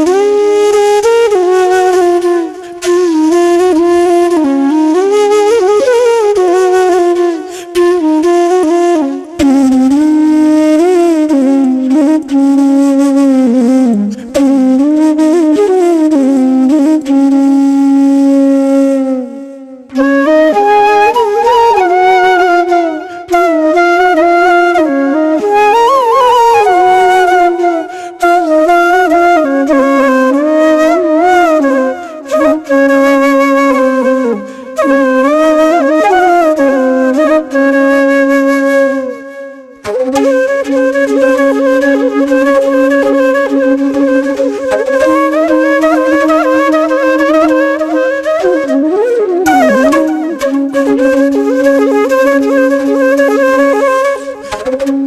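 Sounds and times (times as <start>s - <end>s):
flute melody: 0.0s - 55.0s.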